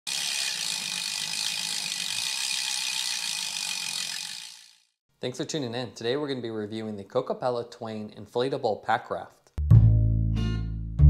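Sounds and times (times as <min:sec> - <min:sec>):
bicycle freewheel ratchet clicking: 0:00.1 - 0:05.0.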